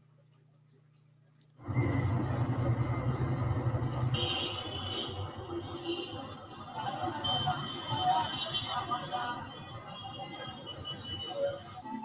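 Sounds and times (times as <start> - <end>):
low rumbling ambience: 1.6 - 7.4.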